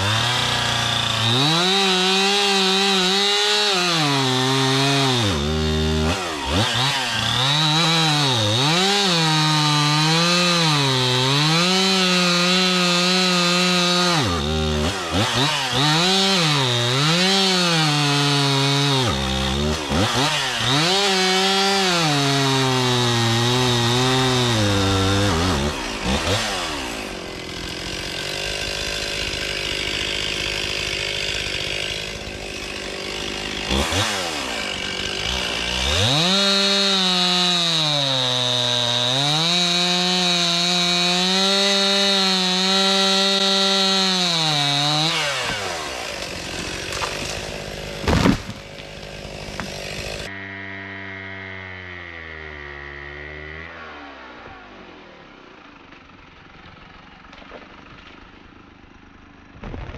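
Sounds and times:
loud wood crack: 0.0s - 50.3s, 56.7s - 58.6s, 59.6s - 59.9s
pole saw engine cutting wood: 0.0s - 59.9s.

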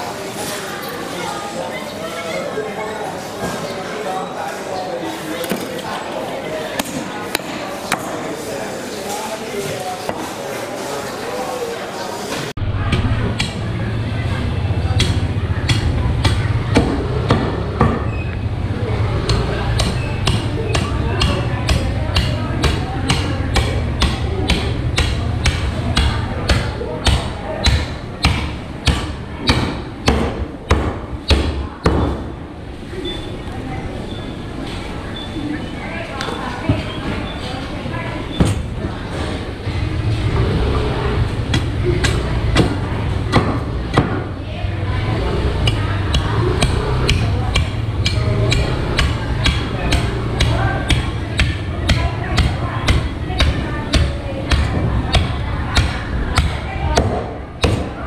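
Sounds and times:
market chatter: 0.0s - 58.0s.

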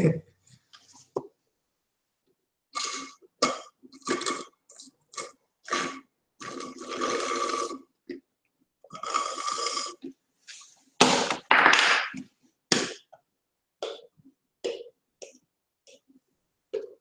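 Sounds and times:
slurping through a straw: 2.8s - 7.9s, 8.9s - 10.7s.

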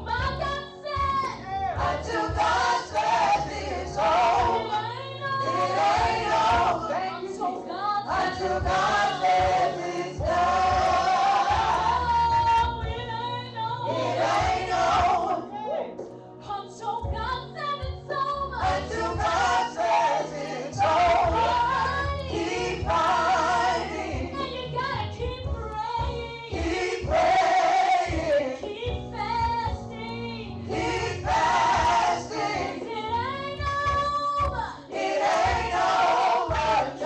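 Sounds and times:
woman singing gospel into microphone: 0.0s - 15.3s, 16.4s - 35.8s.

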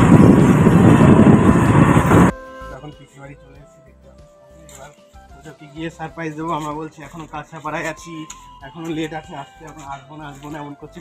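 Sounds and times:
auto-rickshaw engine: 0.0s - 2.3s
road and wind noise: 0.0s - 2.4s.

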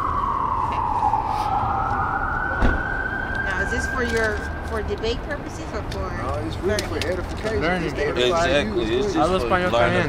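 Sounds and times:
emergency vehicle siren wailing: 0.0s - 6.4s.

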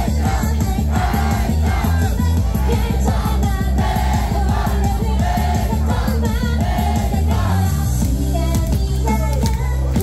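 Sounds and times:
crowd shouting along: 0.0s - 7.9s
backing track with heavy bass: 0.0s - 10.0s
women singing pop song: 0.0s - 10.0s.

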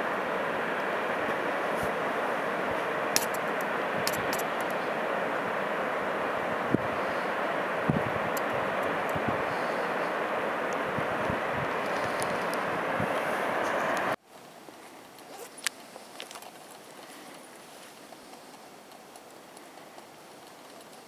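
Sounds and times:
waterfall rushing: 0.0s - 14.2s.

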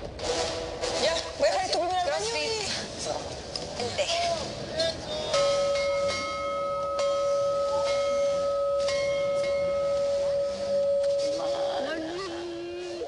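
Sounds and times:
bell-like ringing tone: 5.3s - 12.2s.

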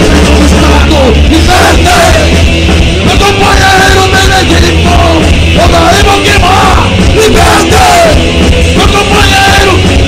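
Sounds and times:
punk band playing: 0.0s - 10.0s
shouted lead vocal: 0.0s - 10.0s.

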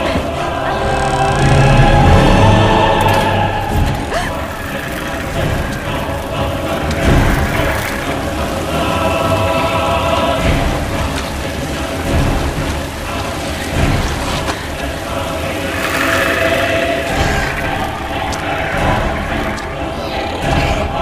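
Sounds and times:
heavy rain pouring: 0.0s - 21.0s
horror film score: 0.0s - 21.0s.

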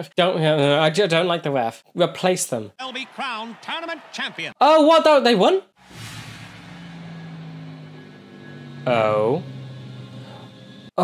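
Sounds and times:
low droning hum: 5.9s - 10.9s.

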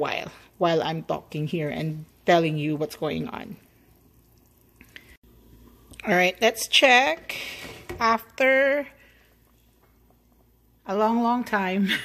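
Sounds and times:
pot simmering: 0.0s - 11.7s.

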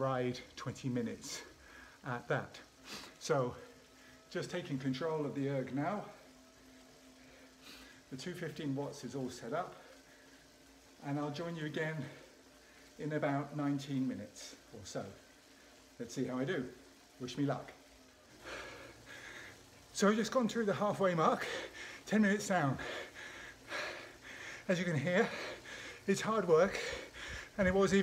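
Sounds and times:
faint hum of indoor bike trainer: 0.0s - 28.0s
soft hiss: 0.0s - 28.0s
man breathing hard: 22.8s - 26.1s, 26.7s - 27.7s.

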